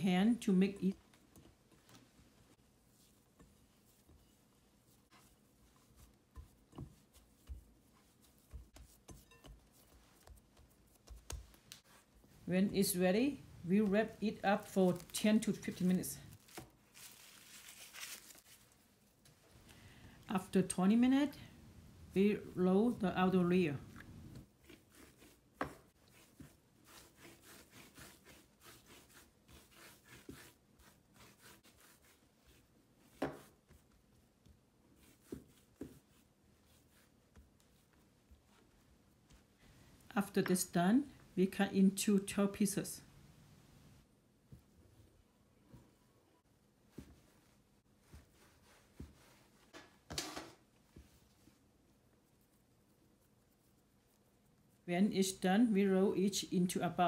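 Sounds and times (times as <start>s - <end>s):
hands kneading dough: 0.2s - 40.8s, 43.4s - 56.5s
scraper scraping dough: 24.6s - 33.6s.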